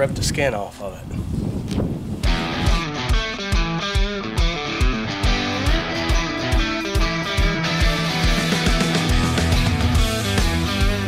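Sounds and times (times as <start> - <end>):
rock music with guitar and drums: 2.2 - 11.0.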